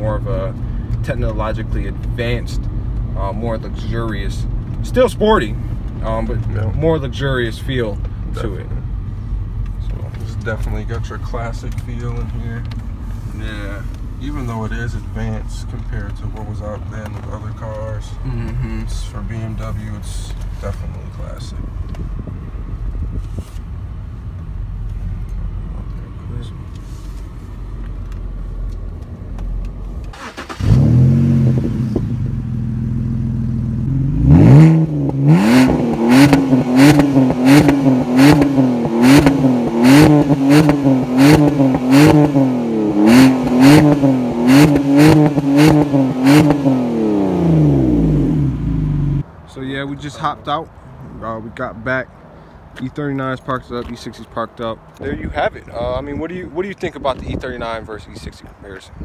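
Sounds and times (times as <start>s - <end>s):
car engine revving: 30.0s - 49.3s.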